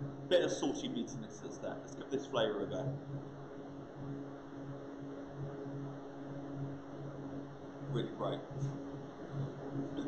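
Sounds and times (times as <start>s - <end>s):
wavering background hum: 0.0s - 10.0s.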